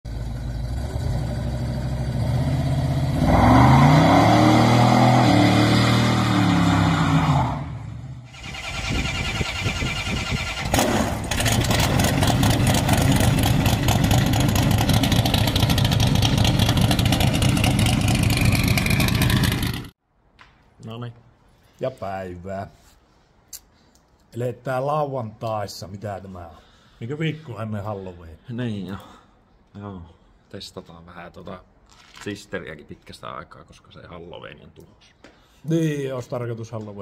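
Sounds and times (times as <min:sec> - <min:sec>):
car engine revving: 0:00.1 - 0:09.6, 0:10.6 - 0:19.9.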